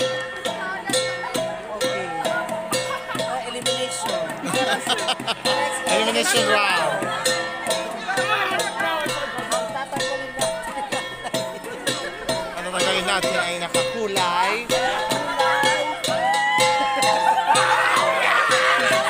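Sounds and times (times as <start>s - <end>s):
drum beat: 0.0s - 19.0s
gongs playing fast beat: 0.0s - 19.0s
people calling out and laughing: 0.0s - 19.0s.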